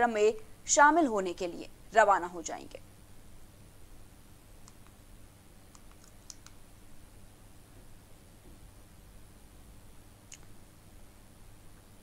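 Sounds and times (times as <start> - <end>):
steady low hum: 0.0 - 12.0
faint small clicks: 4.6 - 5.0, 5.7 - 6.6, 10.3 - 10.6.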